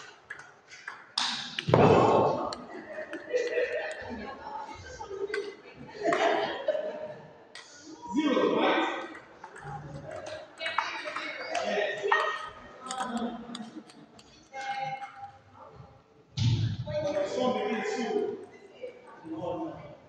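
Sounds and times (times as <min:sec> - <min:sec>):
people talking: 0:01.2 - 0:15.8, 0:16.4 - 0:20.0.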